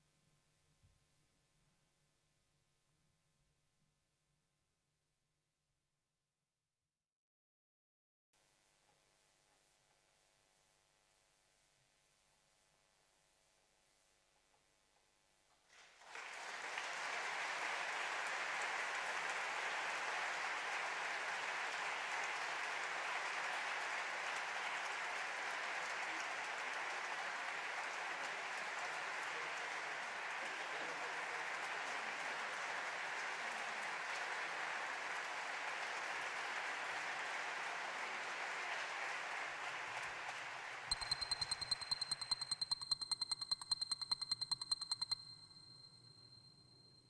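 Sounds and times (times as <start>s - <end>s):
audience applauding: 15.7s - 45.1s.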